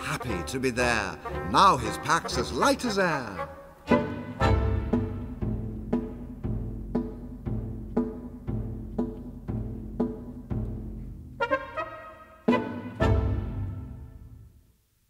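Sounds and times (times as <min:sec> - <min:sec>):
chamber ensemble playing a march: 0:00.0 - 0:05.9, 0:11.4 - 0:14.4.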